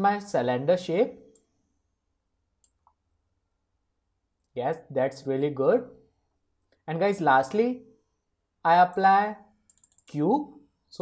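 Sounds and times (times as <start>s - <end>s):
person speaking: 0.0s - 1.3s, 6.6s - 8.0s, 8.6s - 11.0s
computer mouse clicks: 2.6s - 3.0s, 9.6s - 10.2s.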